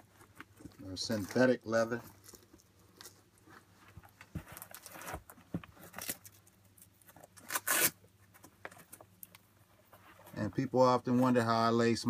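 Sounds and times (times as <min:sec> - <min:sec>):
sneakers rustling and clicking: 0:03.1 - 0:06.1.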